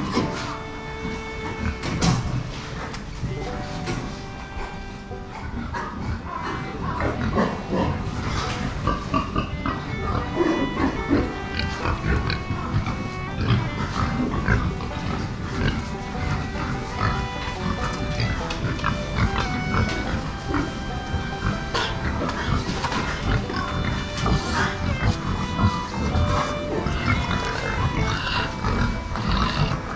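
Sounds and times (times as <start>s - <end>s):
background music with held notes: 0.0s - 29.9s
pigs grunting: 0.0s - 29.9s.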